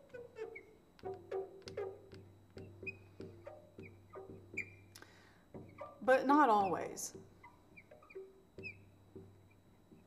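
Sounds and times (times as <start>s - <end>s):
marker squeaking on glass: 0.0s - 4.9s, 5.6s - 10.0s.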